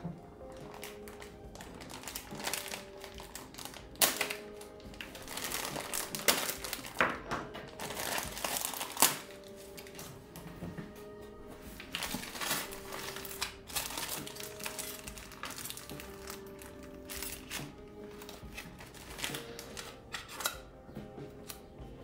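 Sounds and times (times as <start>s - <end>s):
soft background music: 0.0s - 22.0s
packaging crinkling: 0.4s - 10.4s, 11.7s - 20.7s.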